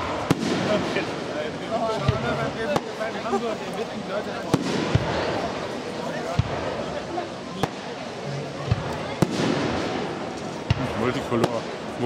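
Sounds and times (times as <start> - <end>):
firework bang: 0.0 - 1.4, 4.4 - 5.6, 8.7 - 11.9
fireworks rumble: 0.0 - 12.0.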